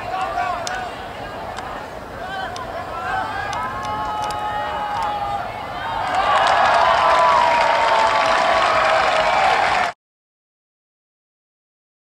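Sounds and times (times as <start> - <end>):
people shouting: 0.0 - 9.9
crowd cheering: 0.0 - 10.0
people clapping: 3.5 - 5.2, 5.9 - 10.0.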